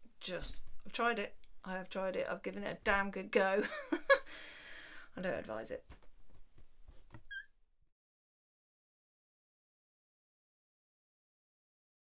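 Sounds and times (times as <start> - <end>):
short high squeak: 7.2 - 7.5.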